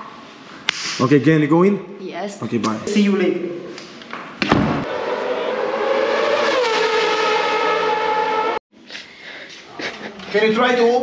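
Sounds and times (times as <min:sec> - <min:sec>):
racing car engine at high revs: 0:04.7 - 0:08.6.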